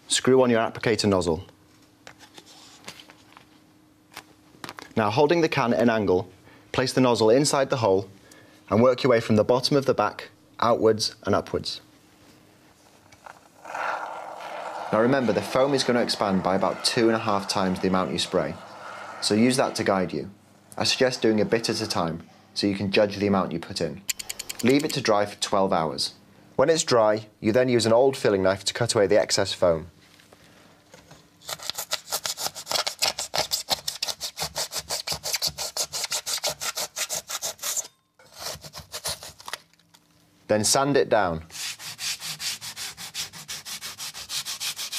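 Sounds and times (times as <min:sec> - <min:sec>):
knife sawing through foam: 0:13.6 - 0:20.1, 0:31.5 - 0:39.4, 0:41.5 - 0:44.9.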